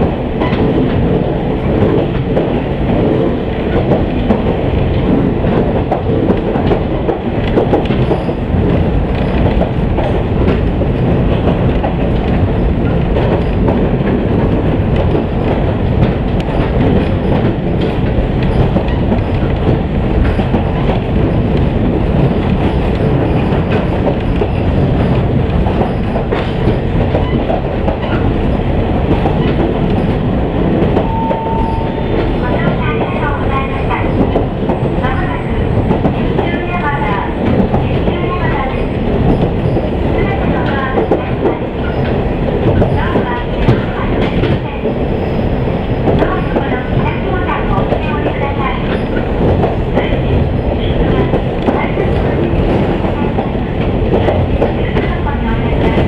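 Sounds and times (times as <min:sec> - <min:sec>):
railcar engine and wheels rumble: 0:00.0 - 0:56.0
brief tone: 0:31.0 - 0:32.2.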